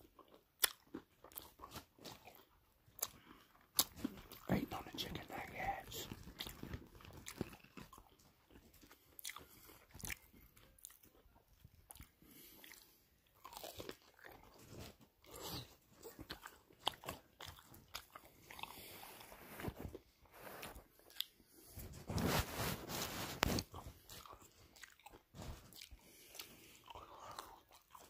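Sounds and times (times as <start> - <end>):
chewing crunchy food: 0.0 - 28.0.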